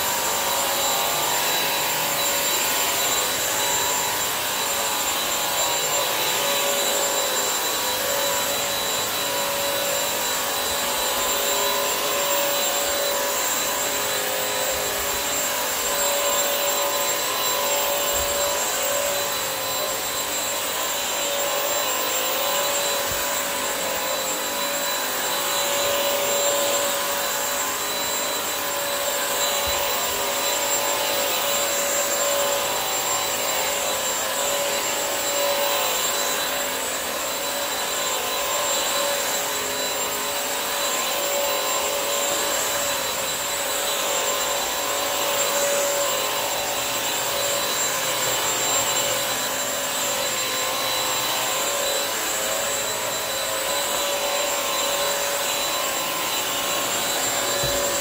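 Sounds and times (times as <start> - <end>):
vacuum mop running: 0.0 - 58.0.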